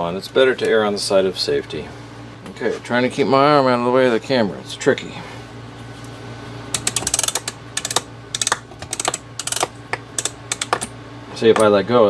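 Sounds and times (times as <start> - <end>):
ratchet pawl clicking: 6.7 - 10.9.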